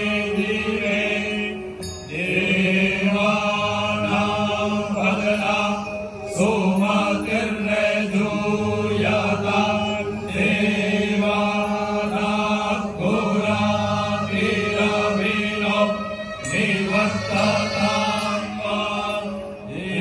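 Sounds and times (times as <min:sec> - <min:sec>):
men chanting in unison: 0:00.0 - 0:20.0.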